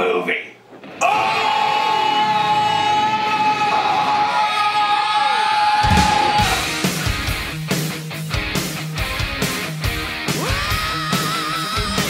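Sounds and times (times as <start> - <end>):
people yelling and whooping: 1.0 - 6.7
heavy drum hits: 5.8 - 7.6
loud rock music: 5.8 - 12.0.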